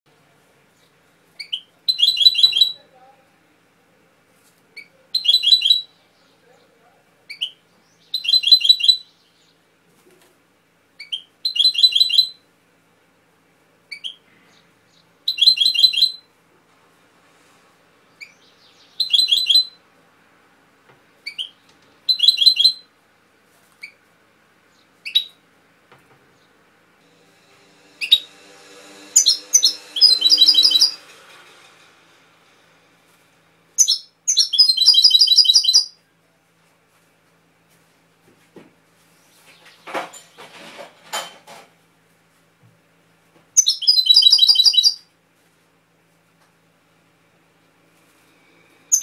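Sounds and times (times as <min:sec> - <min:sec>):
goldfinch singing trills: 0:29.1 - 0:31.0, 0:33.8 - 0:35.9.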